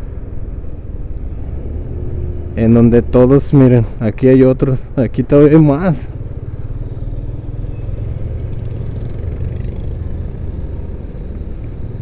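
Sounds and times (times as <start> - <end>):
motorcycle engine rumbling: 6.0 - 12.0.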